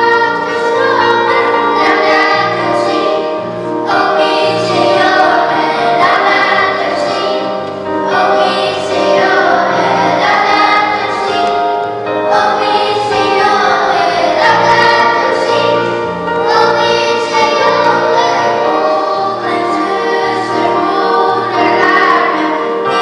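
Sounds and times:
church choir singing a hymn: 0:00.0 - 0:23.0.

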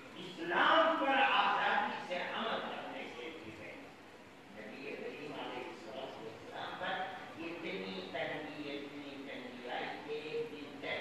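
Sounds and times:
man speaking into a microphone: 0:00.0 - 0:11.0.

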